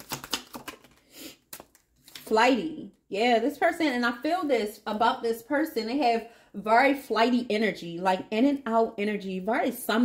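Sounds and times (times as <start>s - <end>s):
cards shuffled by hand: 0.0s - 2.3s.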